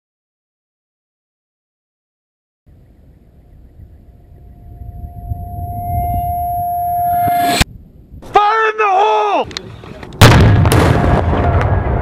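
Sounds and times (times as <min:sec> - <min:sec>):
rumble: 0:02.7 - 0:08.2
whistling tone: 0:04.4 - 0:07.6.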